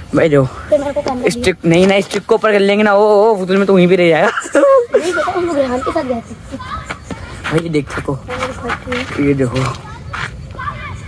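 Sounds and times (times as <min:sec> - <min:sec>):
person talking: 0:07.4 - 0:09.8.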